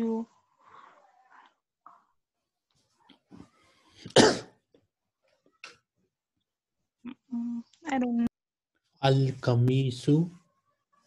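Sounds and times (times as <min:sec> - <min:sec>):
person coughing: 0:04.1 - 0:04.6.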